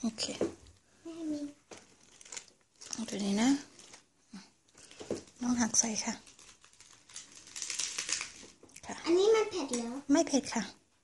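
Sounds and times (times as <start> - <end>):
lettuce leaves crinkling: 1.7 - 4.1, 4.8 - 8.6.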